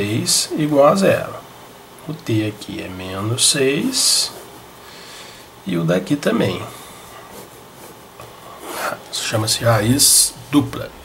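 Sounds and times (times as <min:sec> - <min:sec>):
pen scratching on paper: 0:07.1 - 0:09.0.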